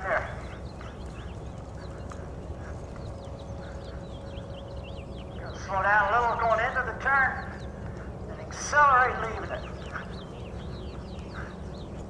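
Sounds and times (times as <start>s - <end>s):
faint steady hum: 0.0s - 12.0s
horse hoofbeats on dirt: 0.0s - 12.0s
wind rumble on microphone: 0.0s - 12.0s.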